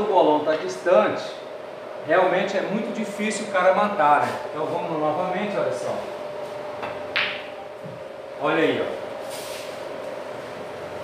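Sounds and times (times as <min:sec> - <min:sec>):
faint hum: 0:00.0 - 0:11.0
cue tip tapping ball: 0:06.8 - 0:07.6
pool balls clicking: 0:06.8 - 0:07.6.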